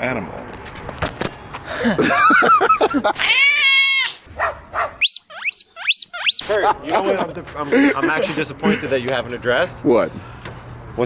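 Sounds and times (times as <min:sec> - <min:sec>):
animal high-pitched squeals: 0:03.2 - 0:04.3, 0:05.0 - 0:06.5.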